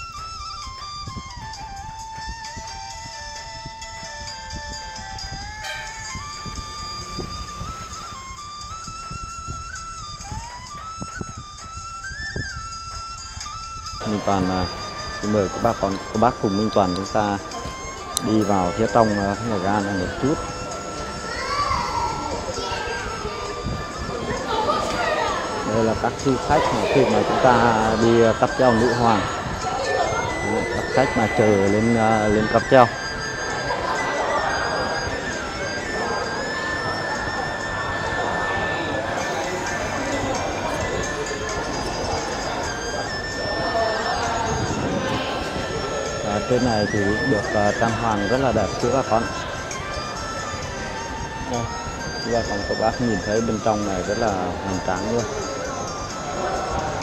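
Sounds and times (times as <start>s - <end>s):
background murmur: 0.0s - 57.0s
crowd chatting: 0.0s - 57.0s
music playing: 0.0s - 57.0s
steady high tone: 0.0s - 57.0s
child's voice echoing: 21.3s - 23.5s.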